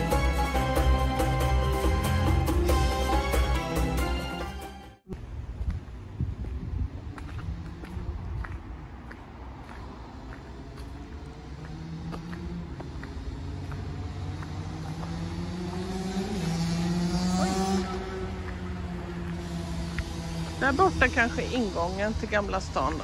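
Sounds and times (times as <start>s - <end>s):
footsteps on gravel: 5.5s - 16.6s.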